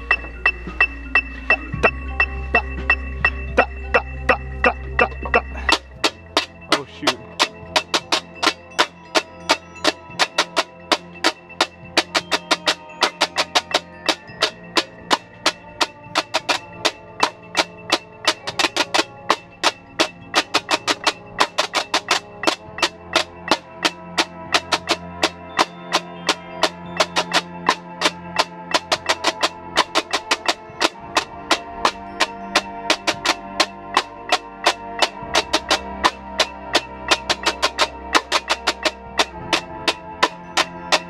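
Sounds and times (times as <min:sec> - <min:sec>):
tenor drums playing: 0:00.0 - 0:41.0
snare drum strokes: 0:04.3 - 0:41.0.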